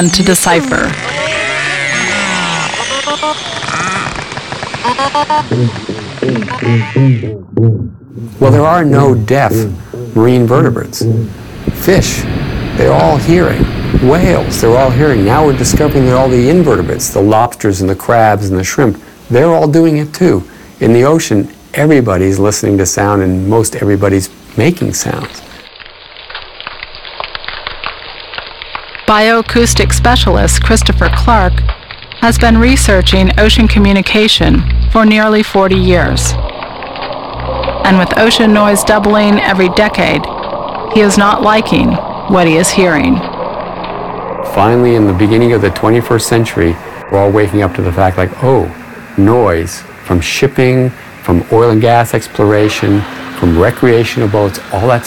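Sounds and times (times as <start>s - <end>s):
whale whistles and squeaks: 0.0s - 5.4s
snapping shrimp crackle underwater: 25.8s - 29.1s
fish drumming pulses: 28.7s - 50.1s.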